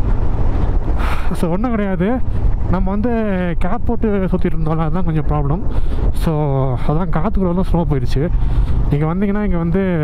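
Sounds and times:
motorcycle engine rumble: 0:00.0 - 0:10.0
wind rushing over microphone: 0:00.0 - 0:10.0
man talking: 0:01.2 - 0:10.0.

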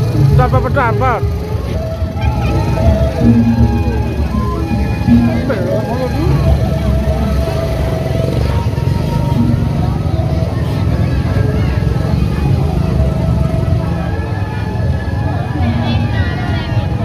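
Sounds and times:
dense low drumming: 0:00.0 - 0:10.6
voices nearby: 0:00.0 - 0:17.0
held tones: 0:01.4 - 0:08.2, 0:08.9 - 0:10.3.

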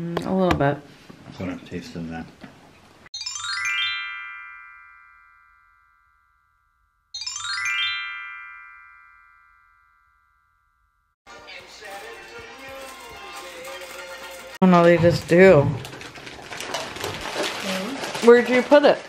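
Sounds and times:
electronic bell-like chime: 0:03.2 - 0:11.2.

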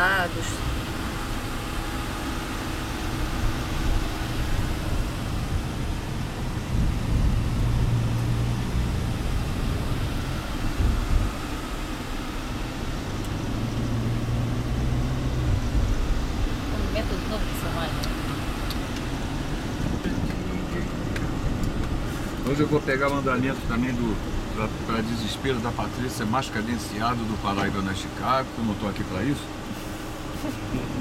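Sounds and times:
van engine and road rumble: 0:00.0 - 0:31.0.

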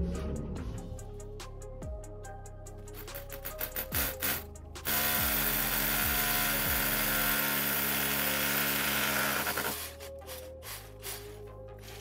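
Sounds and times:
hammer drill boring into brick: 0:03.5 - 0:10.4.

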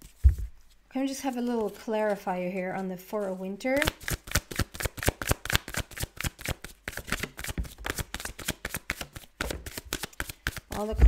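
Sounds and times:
cards being shuffled: 0:03.8 - 0:11.0.

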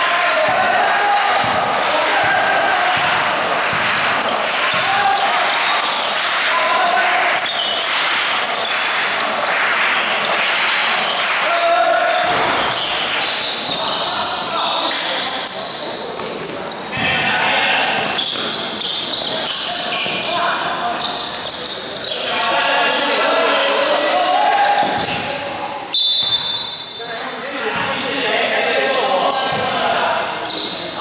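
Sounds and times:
people shouting: 0:00.0 - 0:08.0, 0:11.3 - 0:12.7
basketball bouncing: 0:01.3 - 0:05.6, 0:24.8 - 0:25.3
shoes squeaking: 0:12.1 - 0:17.2, 0:17.8 - 0:22.4, 0:30.4 - 0:31.0
referee's whistle blast: 0:25.9 - 0:27.0.

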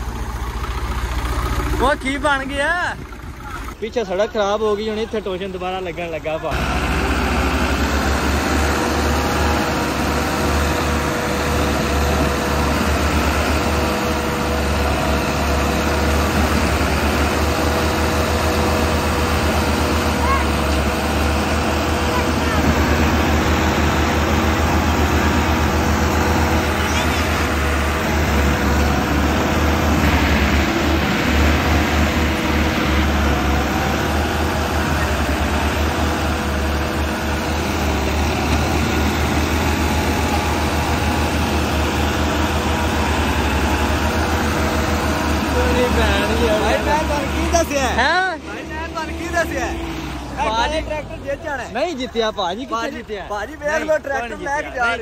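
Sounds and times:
diesel tractor engines under load: 0:00.0 - 0:55.0.

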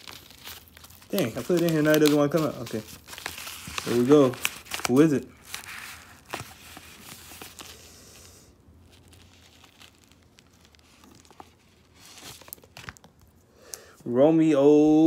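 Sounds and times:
paper mailer crinkling: 0:00.0 - 0:07.8, 0:08.8 - 0:13.3.

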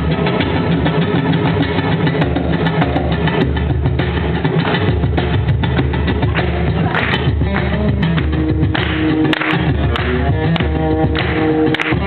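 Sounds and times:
bass guitar: 0:00.0 - 0:12.0
drums: 0:00.0 - 0:12.0.

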